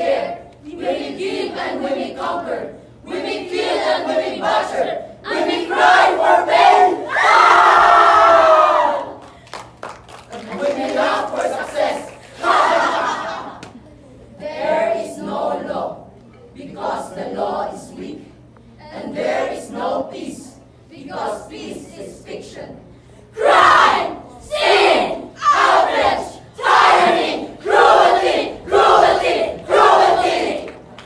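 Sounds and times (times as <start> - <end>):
group of voices shouting together: 6.8 - 9.2.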